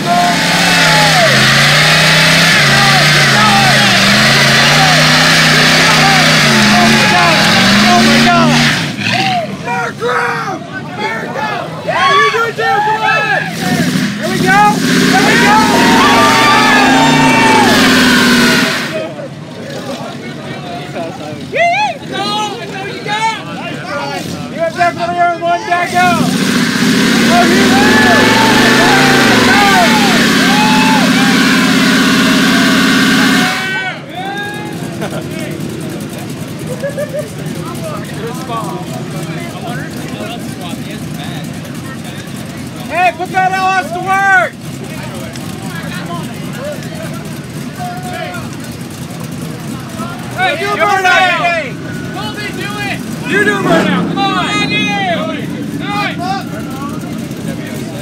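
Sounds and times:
tires spinning in burnout: 0.0s - 9.8s, 11.8s - 58.0s
truck engine revving: 0.0s - 10.1s, 12.4s - 58.0s.

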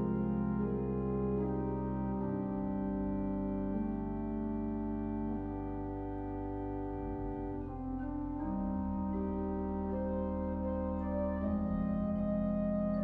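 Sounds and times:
organ playing slow chords: 0.0s - 13.0s.

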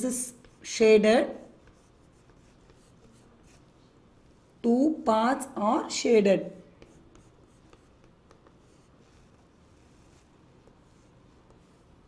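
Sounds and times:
chalk scratching on chalkboard: 0.1s - 4.6s, 6.7s - 12.0s.

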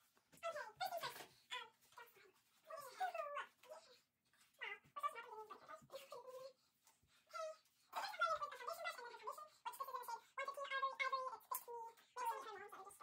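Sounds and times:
sped-up high-pitched voices chattering: 0.3s - 6.6s, 7.3s - 13.0s.

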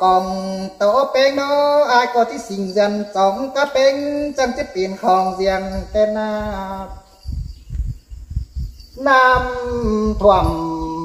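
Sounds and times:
low thumps and rumble: 5.3s - 11.0s.

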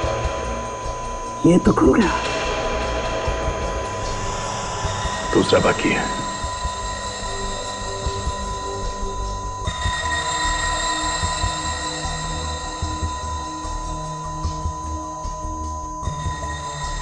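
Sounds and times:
pulsing low note: 0.0s - 17.0s
steady high whine: 0.0s - 17.0s
tense electronic score: 0.0s - 17.0s.

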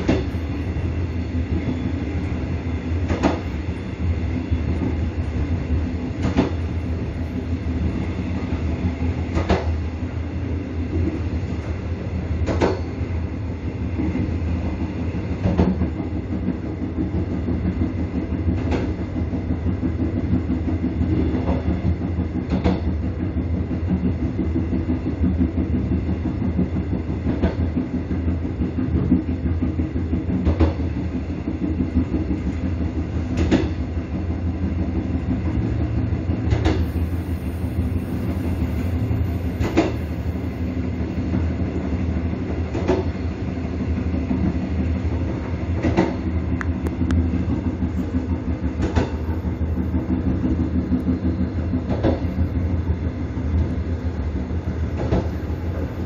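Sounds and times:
wheels clacking over rail joints: 0.0s - 8.1s
train rumbling: 0.0s - 56.0s.

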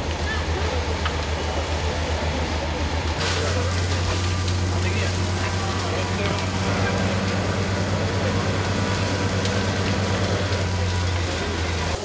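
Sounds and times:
fire hissing and crackling: 0.0s - 12.0s
heavy engine droning: 0.0s - 12.0s.

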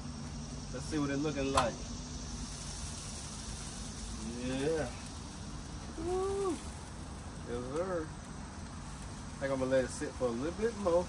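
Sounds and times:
steady outdoor background hiss: 0.0s - 11.0s.

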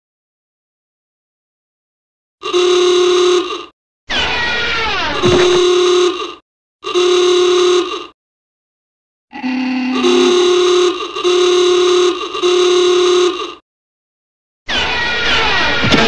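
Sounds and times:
horn-like blasts: 9.5s - 13.4s.

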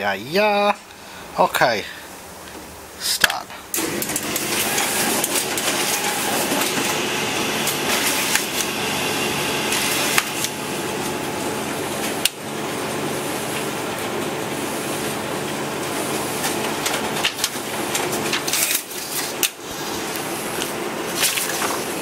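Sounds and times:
photocopier whirring and clattering: 3.7s - 22.0s.

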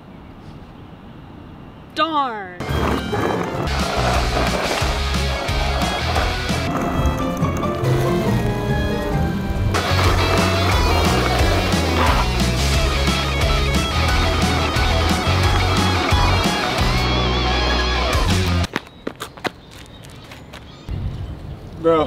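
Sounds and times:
background music: 2.6s - 18.7s
skateboard wheels rolling on pavement: 2.6s - 20.9s.

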